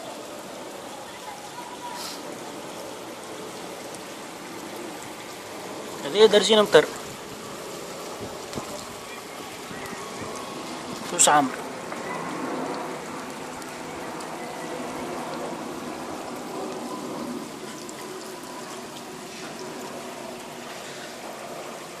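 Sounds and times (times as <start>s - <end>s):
floodwater rushing: 0.0s - 22.0s.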